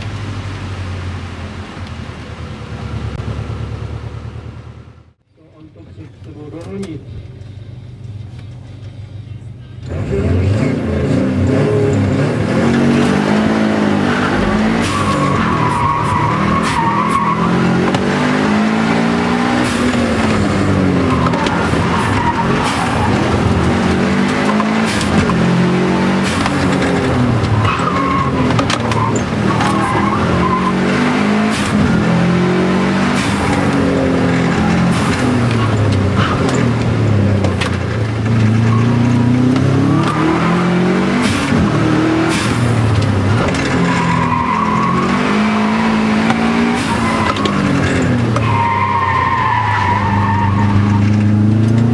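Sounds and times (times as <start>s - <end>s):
car engine accelerating: 9.8s - 51.9s
tyre squeals: 14.0s - 18.0s, 19.6s - 25.4s, 26.2s - 30.9s, 43.6s - 51.2s.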